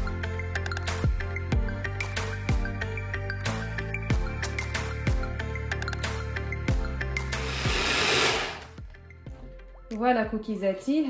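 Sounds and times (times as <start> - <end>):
electric chopper whirring: 7.4 - 8.7.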